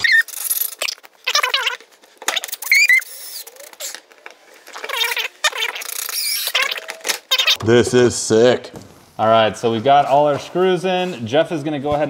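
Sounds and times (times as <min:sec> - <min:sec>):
bolts squealing: 0:00.0 - 0:04.2, 0:04.8 - 0:07.7.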